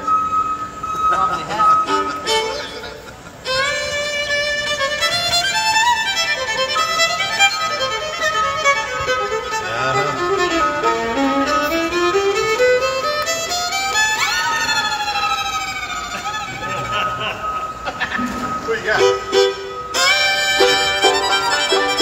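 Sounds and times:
fiddle melody: 0:00.0 - 0:22.0
held drone note: 0:18.2 - 0:22.0.

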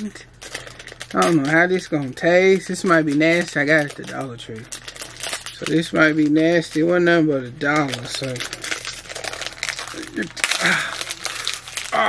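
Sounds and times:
plastic wrappers crinkling: 0:00.0 - 0:12.0.

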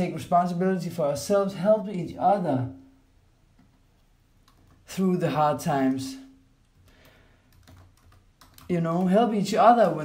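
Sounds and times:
person speaking: 0:00.0 - 0:03.1, 0:04.5 - 0:06.9, 0:07.6 - 0:10.0.

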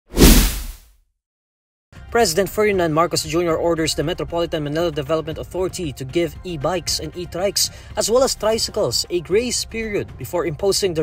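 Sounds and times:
whoosh with low hit: 0:00.1 - 0:00.8.

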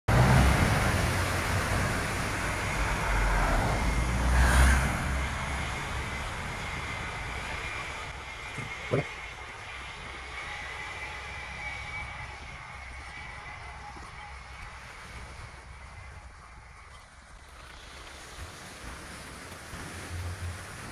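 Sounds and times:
dump truck diesel engine rumbling: 0:00.1 - 0:11.0
faint high whine: 0:00.9 - 0:18.6.

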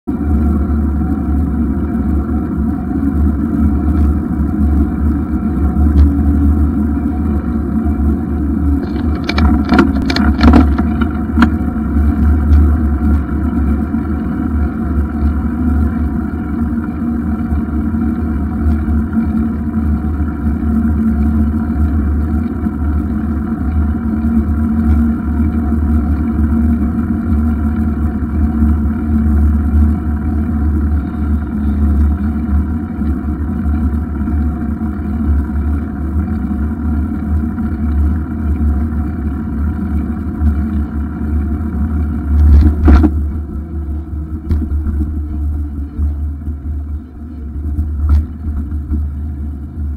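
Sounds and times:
bicycle road noise: 0:00.0 - 0:49.9
clicks and rattles: 0:08.8 - 0:11.6
wind on microphone: 0:42.3 - 0:46.0.

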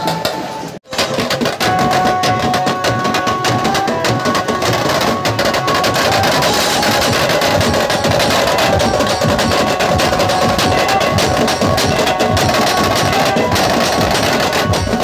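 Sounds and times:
drum-led festival music: 0:00.0 - 0:15.0
held melody notes: 0:00.0 - 0:15.0.

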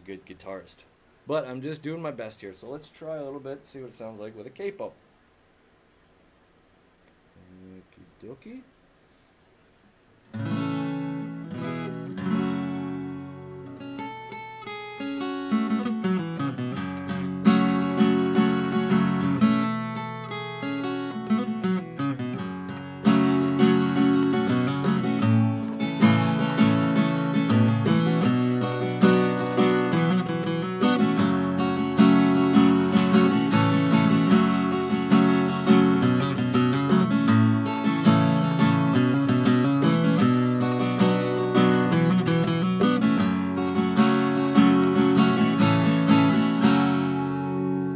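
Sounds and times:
acoustic guitar strumming: 0:10.3 - 0:47.9.

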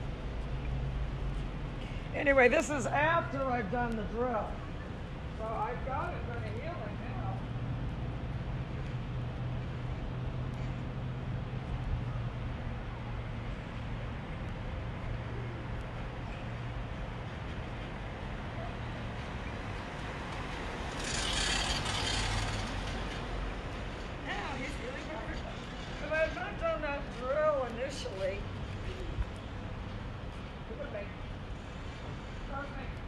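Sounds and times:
road traffic hum: 0:00.0 - 0:33.0.

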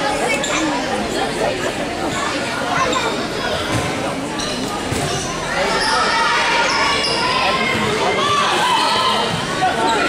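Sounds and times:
girls' voices in a gym: 0:00.0 - 0:10.0.

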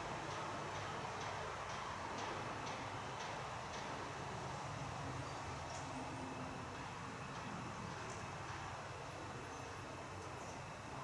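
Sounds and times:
faint trackside background noise: 0:00.0 - 0:11.0.

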